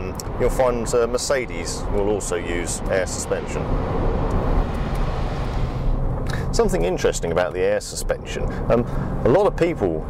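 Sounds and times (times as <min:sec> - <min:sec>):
car engine passing: 0:01.6 - 0:07.4.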